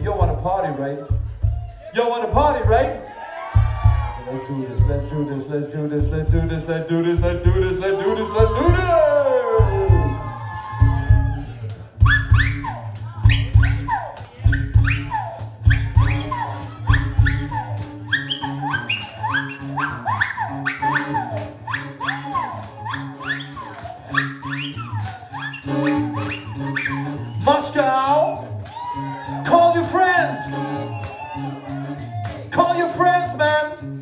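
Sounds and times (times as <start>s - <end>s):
funk band playing: 0.0s - 34.0s
bass drum hits: 1.1s - 1.8s, 2.4s - 4.2s, 9.6s - 11.5s.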